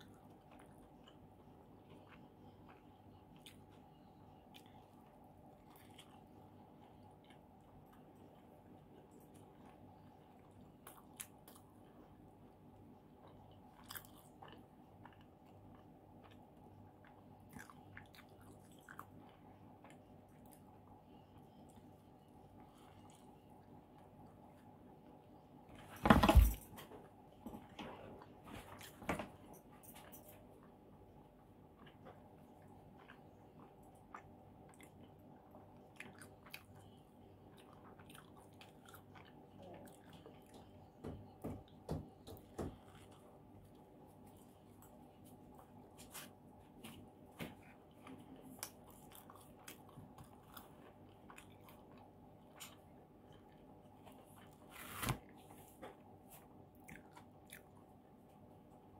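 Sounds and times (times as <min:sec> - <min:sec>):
person chewing: 0:00.0 - 0:12.4, 0:13.1 - 0:24.7, 0:31.7 - 0:41.0, 0:42.2 - 0:54.6, 0:56.0 - 0:58.4.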